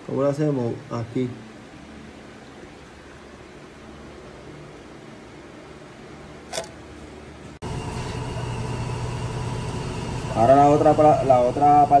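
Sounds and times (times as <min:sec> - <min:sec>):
sharp click: 0:06.5 - 0:06.8
low machine hum: 0:07.1 - 0:12.0.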